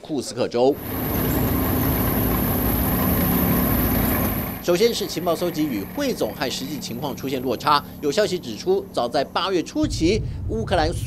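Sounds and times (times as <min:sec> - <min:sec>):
thin high whine: 0:00.7 - 0:09.8
tank engine running: 0:00.7 - 0:09.9.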